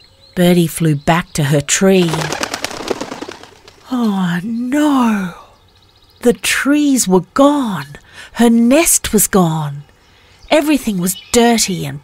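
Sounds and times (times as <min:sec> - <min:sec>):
bird wings flapping: 0:01.8 - 0:04.0.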